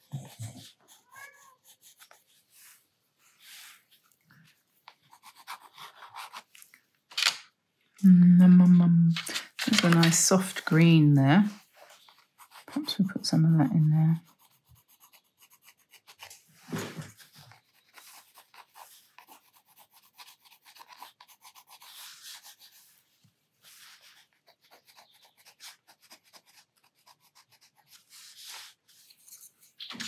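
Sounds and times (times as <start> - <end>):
pencil scratching on paper: 1.6 - 2.8, 4.8 - 6.5, 9.8 - 29.8.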